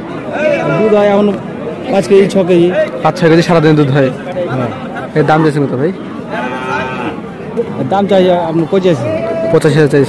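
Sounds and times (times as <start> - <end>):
voices talking in background: 0.0 - 10.0.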